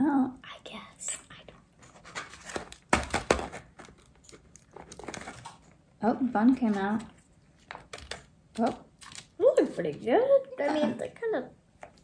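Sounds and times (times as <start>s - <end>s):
plastic clicks and rustles: 1.8s - 5.8s, 6.5s - 9.4s.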